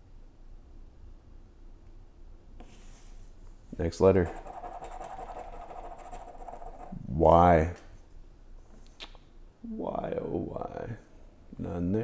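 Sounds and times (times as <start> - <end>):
coin scraping scratch-off ticket: 4.3 - 7.0.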